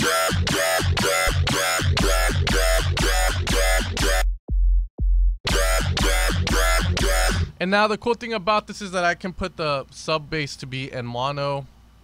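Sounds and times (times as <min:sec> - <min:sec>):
dubstep wobble bass: 0:00.0 - 0:04.2, 0:05.5 - 0:07.5
deep sub bass: 0:04.0 - 0:07.5.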